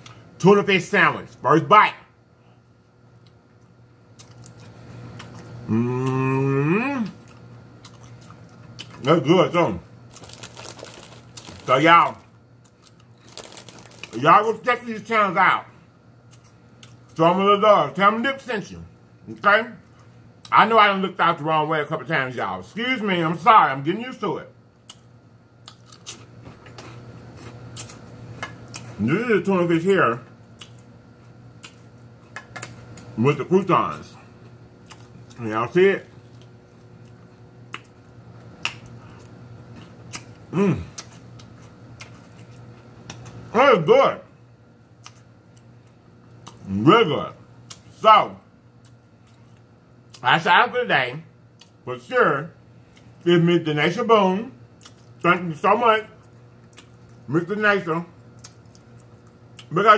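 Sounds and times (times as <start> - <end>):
faint low hum: 0.0 - 59.9
man speaking: 0.4 - 2.1, 9.0 - 9.8, 11.6 - 12.2, 14.1 - 15.7, 17.2 - 19.8, 29.0 - 30.2, 35.4 - 36.1, 46.6 - 48.4, 50.2 - 51.3, 51.9 - 52.6, 53.3 - 54.6
person chewing food: 3.2 - 6.2, 7.0 - 9.0, 10.1 - 11.7, 12.6 - 14.2, 24.8 - 29.0, 34.3 - 35.4, 36.1 - 43.5, 45.0 - 46.7, 48.8 - 50.2, 52.8 - 53.2, 54.8 - 55.2, 56.2 - 57.3, 58.2 - 59.7.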